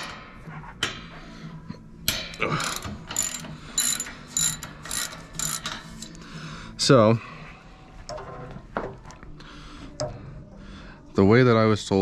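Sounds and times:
socket ratchet clicking: 0:02.1 - 0:06.2.

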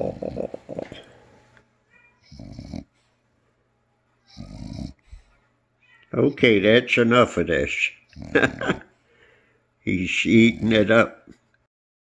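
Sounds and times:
dog snoring: 0:00.0 - 0:01.1, 0:02.2 - 0:03.0, 0:04.2 - 0:05.2, 0:08.0 - 0:08.8, 0:10.1 - 0:11.0.

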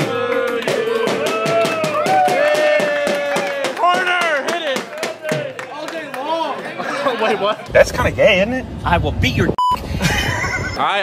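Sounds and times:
group singing birthday song: 0:00.0 - 0:01.7
drum beats: 0:00.0 - 0:05.7
hand claps: 0:00.2 - 0:06.3.

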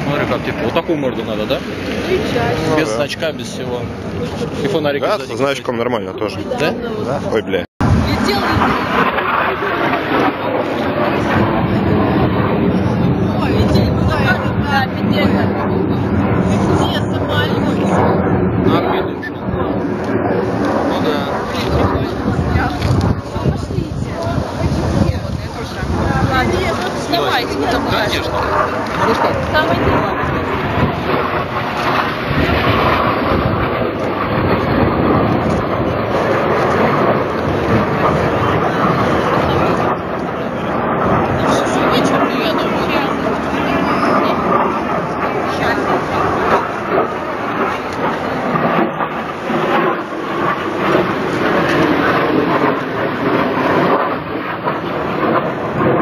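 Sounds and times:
jet aircraft roaring overhead: 0:00.0 - 0:56.0.

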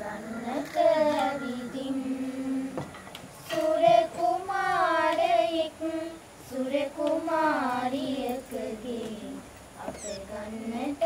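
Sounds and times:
girls singing unaccompanied: 0:00.0 - 0:11.0.

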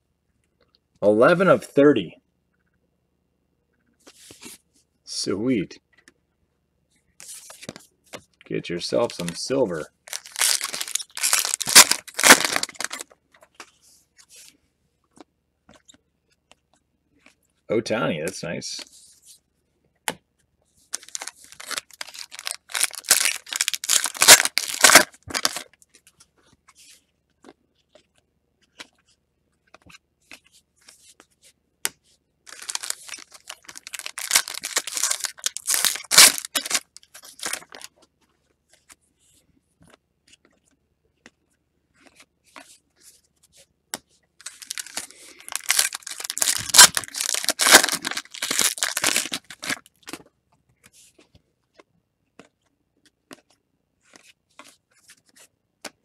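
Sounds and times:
foil pack tearing and crinkling: 0:10.1 - 0:13.0, 0:21.0 - 0:25.7, 0:32.5 - 0:37.9, 0:44.4 - 0:49.9.

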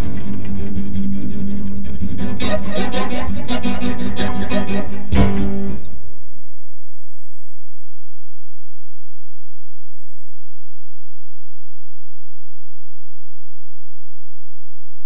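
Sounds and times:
guitar note ringing: 0:02.2 - 0:06.3.

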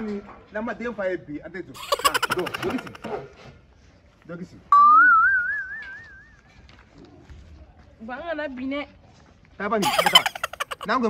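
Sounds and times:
warbling whistle: 0:04.8 - 0:06.3.

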